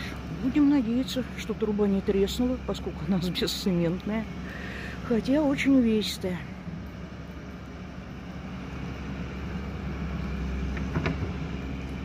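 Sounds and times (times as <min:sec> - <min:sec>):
excavator diesel engine running: 0:00.0 - 0:12.0.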